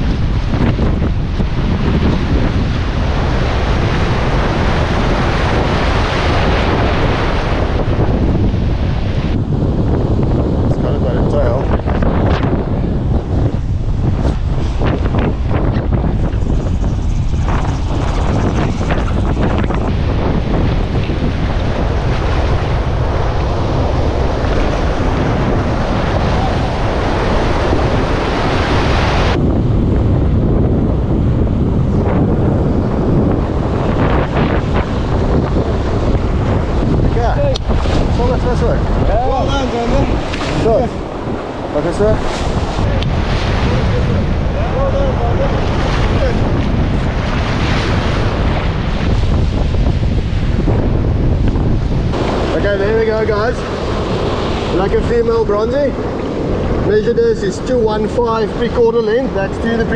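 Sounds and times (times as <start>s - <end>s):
surf and rushing whitewater: 0.0s - 59.9s
wind buffeting microphone: 0.0s - 59.9s.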